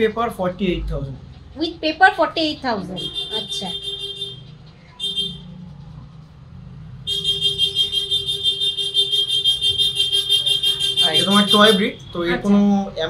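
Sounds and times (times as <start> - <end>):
buzzing electronic warning tone: 3.0 - 5.6, 7.0 - 11.8.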